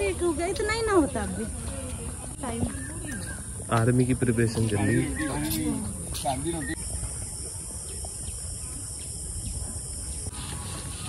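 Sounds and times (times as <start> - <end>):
voices talking: 0.0 - 10.4
insects droning: 2.2 - 11.0.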